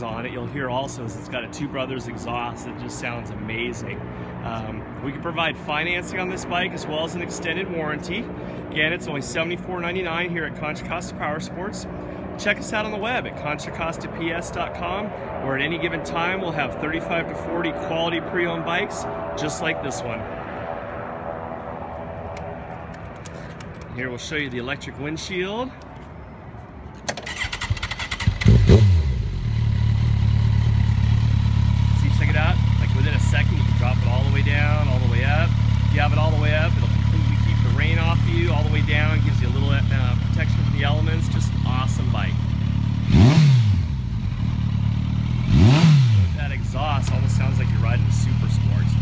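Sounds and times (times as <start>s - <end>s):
motorcycle engine idling and revving: 0.0s - 25.3s, 27.0s - 49.0s
motorcycle engine idling: 27.2s - 49.0s.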